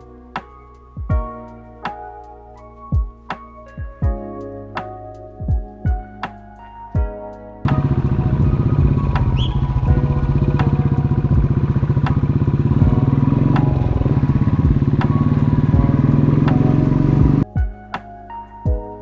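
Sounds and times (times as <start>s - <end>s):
background music with beat: 0.0s - 19.0s
motorcycle engine running: 7.7s - 17.4s.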